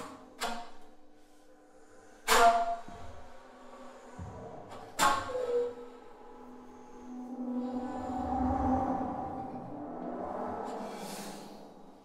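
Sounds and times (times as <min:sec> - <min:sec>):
bass flute with electronics: 0:05.0 - 0:11.4.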